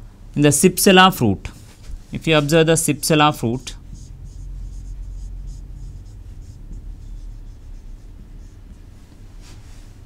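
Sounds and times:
marker writing on whiteboard: 0:02.2 - 0:09.0
low hum: 0:02.9 - 0:10.0.

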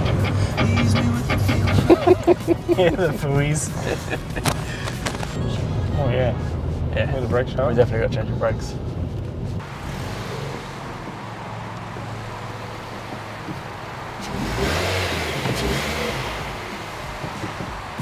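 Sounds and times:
car engine running at low speed: 0:03.7 - 0:18.0.

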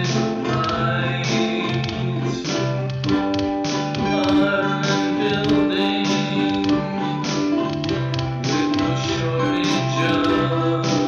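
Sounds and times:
music with held notes: 0:00.0 - 0:11.0.

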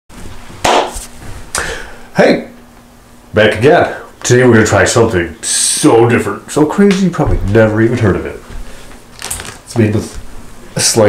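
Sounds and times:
faint steady hum: 0:00.1 - 0:11.0
sharp knocks: 0:00.6 - 0:01.0.

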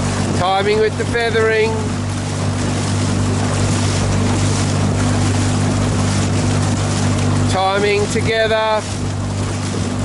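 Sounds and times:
outboard motor humming: 0:00.0 - 0:10.0
water and wind hiss: 0:00.0 - 0:10.0.

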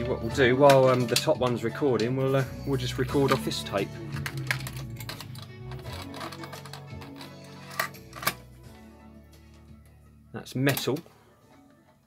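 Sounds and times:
music from cassette tape: 0:00.0 - 0:12.0.

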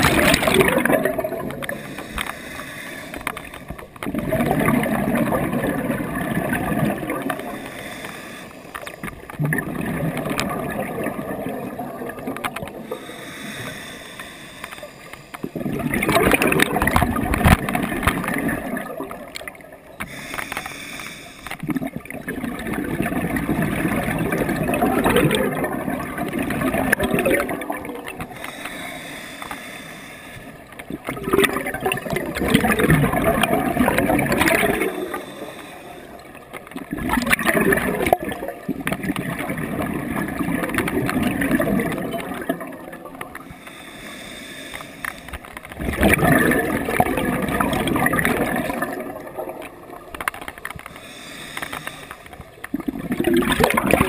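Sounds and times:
underwater exhaled bubbles rushing: 0:00.0 - 0:14.0, 0:15.1 - 0:20.4, 0:21.5 - 0:29.1, 0:30.5 - 0:44.4, 0:45.0 - 0:54.0.

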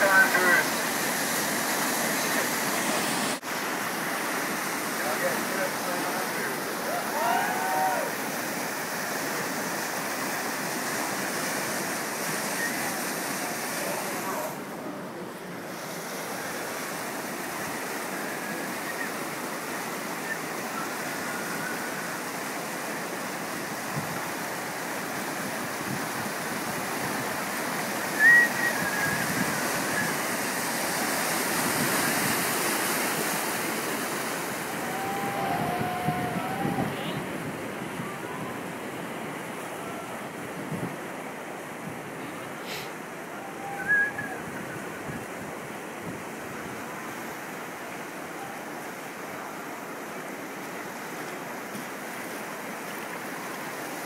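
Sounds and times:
whitewater rushing through rapids: 0:00.0 - 0:54.0
wind on microphone: 0:23.6 - 0:24.4, 0:25.4 - 0:41.1, 0:43.4 - 0:46.8.

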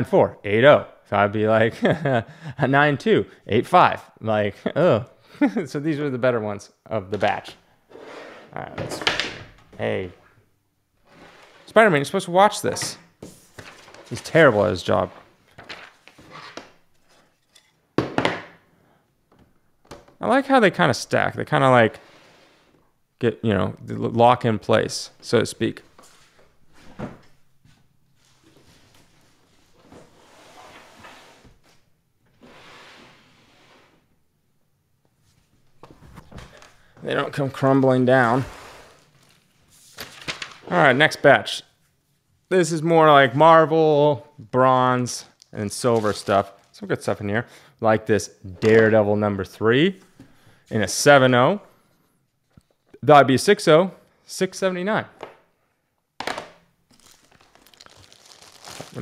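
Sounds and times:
plastic cases sliding on wood: 0:07.9 - 0:08.6
soft crinkling: 0:39.0 - 0:40.7, 0:56.9 - 0:59.0
plastic rustle: 0:56.9 - 0:59.0.

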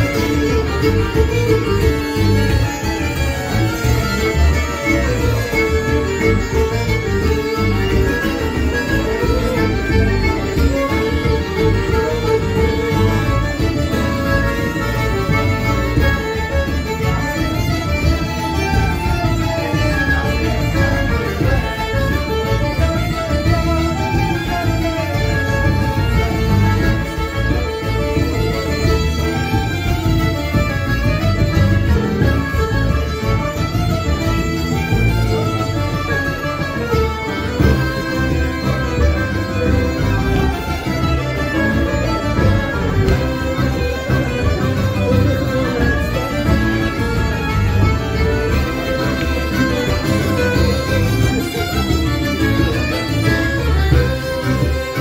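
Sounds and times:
accordions: 0:00.0 - 0:55.0
fiddle: 0:00.0 - 0:55.0
folk dance band playing: 0:00.0 - 0:55.0.

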